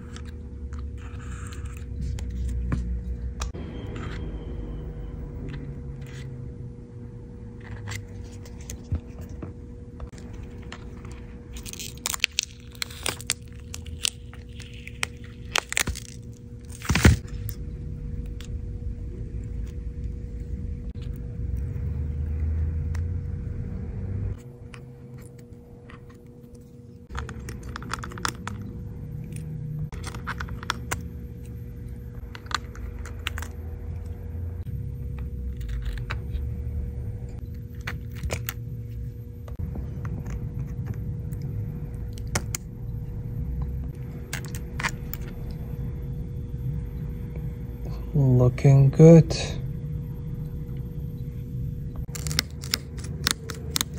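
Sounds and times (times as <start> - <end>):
low hum: 0.0 - 53.9.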